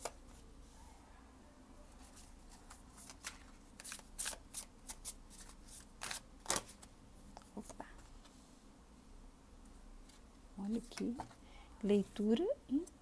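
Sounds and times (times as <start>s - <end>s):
cards being shuffled: 2.0s - 8.1s.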